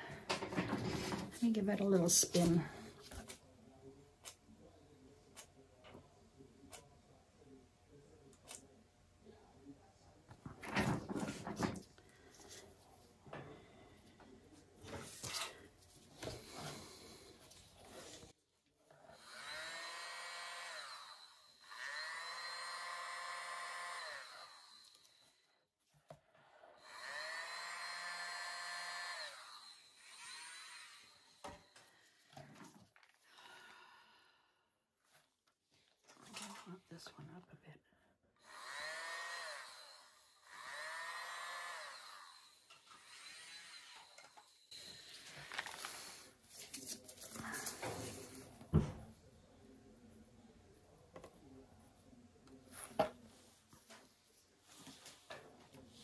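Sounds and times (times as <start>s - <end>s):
electric blower whining: 19.2s - 25.3s, 26.8s - 31.6s, 38.4s - 44.9s.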